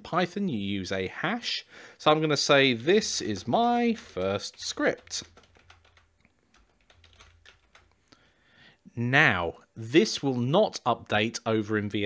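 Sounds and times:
typing on keyboard: 3.0 - 8.0.

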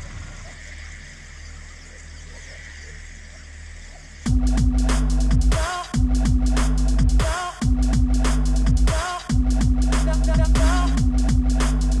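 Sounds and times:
sub-bass drone: 0.0 - 12.0.

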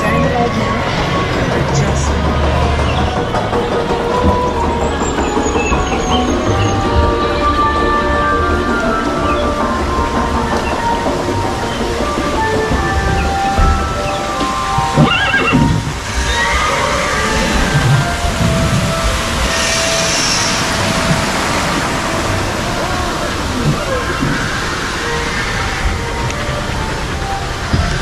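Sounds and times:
music playing: 0.0 - 28.0
waterfall rushing: 0.0 - 28.0
horse whinny: 15.0 - 18.1.

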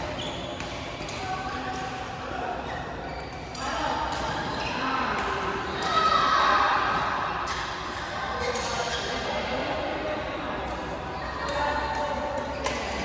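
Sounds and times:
players' voices: 0.0 - 13.0.

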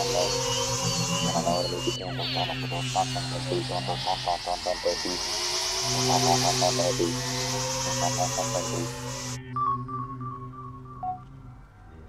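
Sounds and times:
fast warbling synth pulse: 0.0 - 9.4
low synthesizer drone: 0.0 - 12.0.

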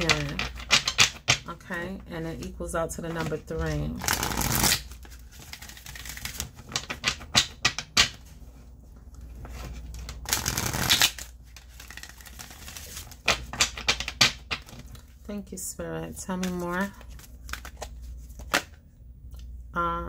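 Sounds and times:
cards rustling shuffle: 2.3 - 15.3, 16.2 - 18.8
cards snapping and clicking: 10.2 - 15.0.

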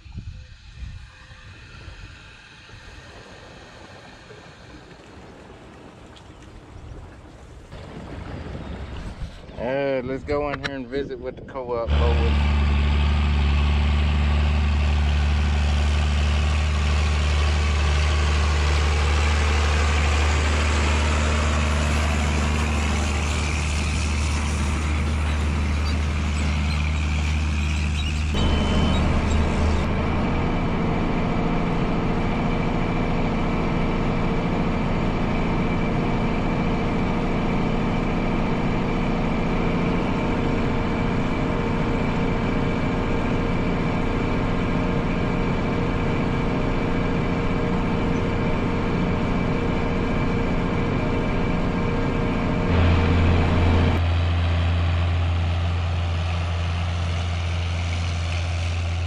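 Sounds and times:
diesel tractor engine running: 7.8 - 59.0.

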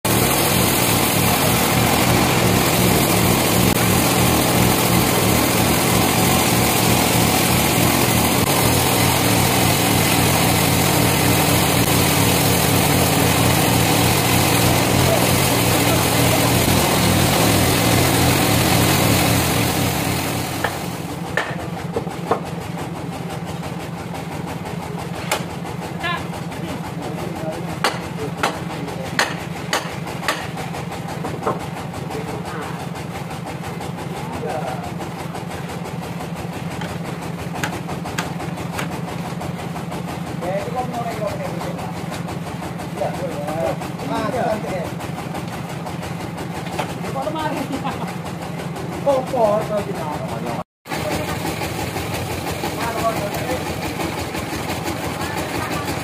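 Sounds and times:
bandsaw mill running: 0.0 - 56.0
sharp knocks: 27.8 - 30.6.

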